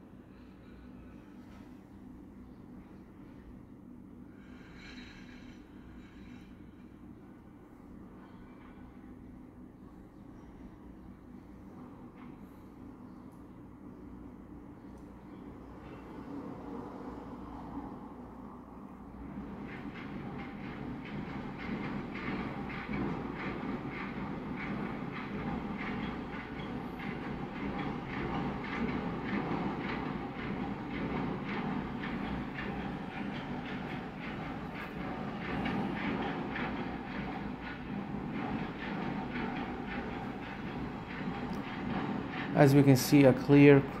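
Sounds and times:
mechanical rumble with clatter: 0.1 - 16.7, 17.3 - 44.0.

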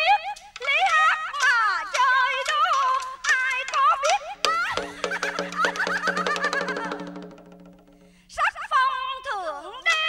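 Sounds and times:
sharp percussive clicks: 0.4 - 8.1.

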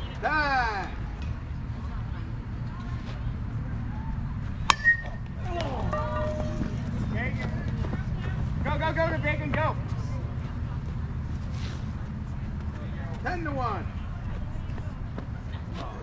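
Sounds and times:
players shouting: 5.4 - 9.8
metallic bat clink: 5.8 - 7.0.

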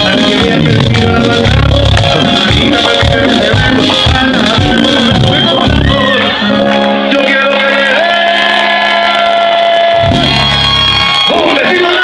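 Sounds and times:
merengue band playing: 0.0 - 12.0.

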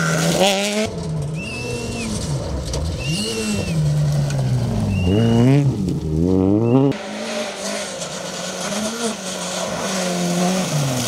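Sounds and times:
rally car engine revving: 0.0 - 11.0
tyres on gravel hiss: 7.0 - 11.0.

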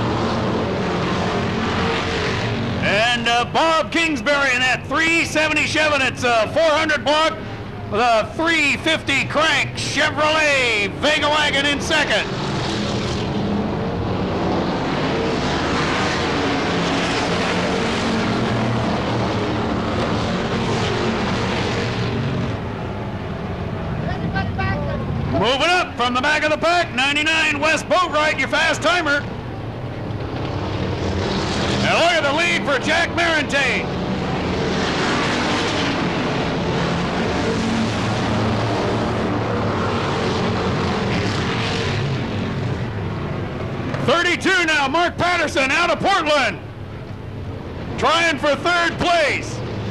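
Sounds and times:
stock car engines racing: 0.0 - 49.9.

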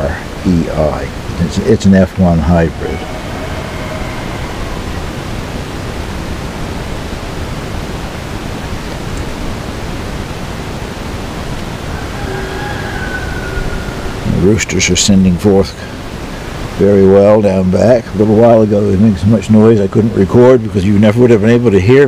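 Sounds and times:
steady rushing outdoor noise: 0.0 - 22.0
roosters crowing faintly: 1.4 - 7.5, 11.6 - 16.6.

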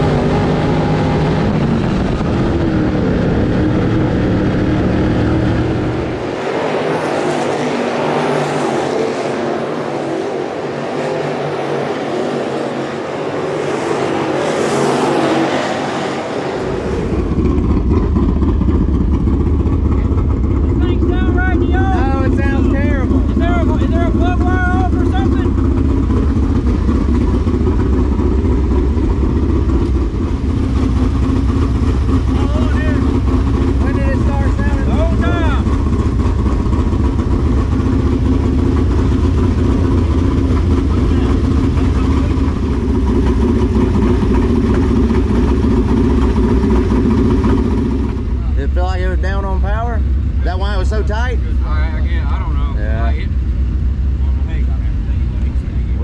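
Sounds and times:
engine idling rough: 0.0 - 15.0, 15.6 - 56.0.

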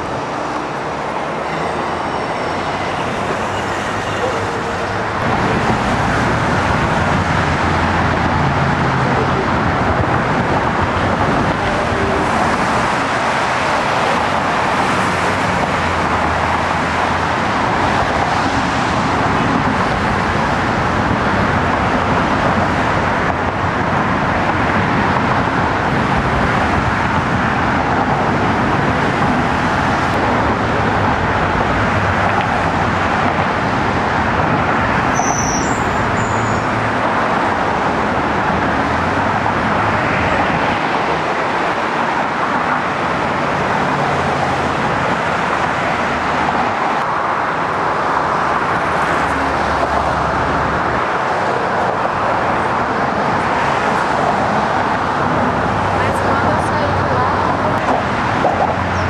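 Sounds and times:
road traffic rush: 0.0 - 59.0
brief high squeak: 35.1 - 36.7.

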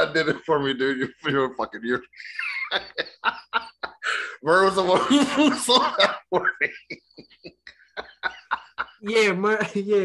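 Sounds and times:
man laughing hard: 2.2 - 4.2, 4.9 - 9.0
breathy gasps: 4.0 - 4.4.

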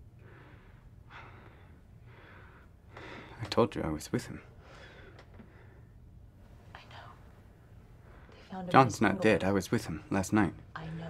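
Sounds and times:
person whispering: 6.8 - 7.2.

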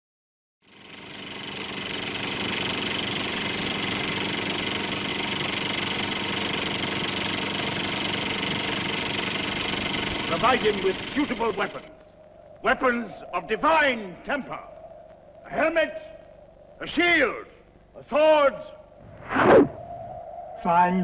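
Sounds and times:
film projector clattering: 0.6 - 11.9.

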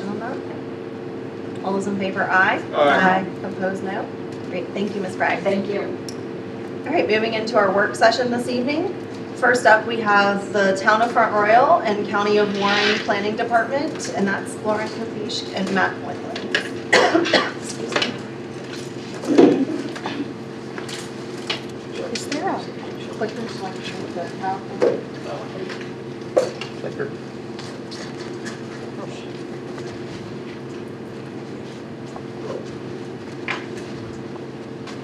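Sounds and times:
hum of low tones: 0.0 - 35.0
person coughing: 16.9 - 17.6.

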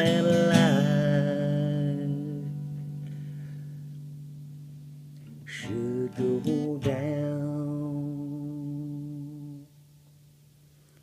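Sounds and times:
person singing: 0.0 - 2.7, 5.5 - 9.7
acoustic guitar strumming: 0.0 - 9.8.

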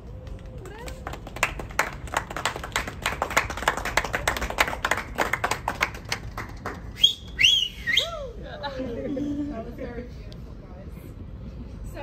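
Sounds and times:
people clapping: 0.0 - 7.5.

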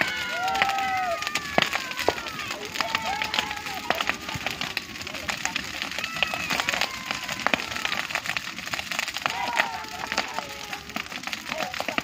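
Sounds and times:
bonfire crackling: 0.0 - 12.0
sharp fire pops: 0.0 - 12.0.

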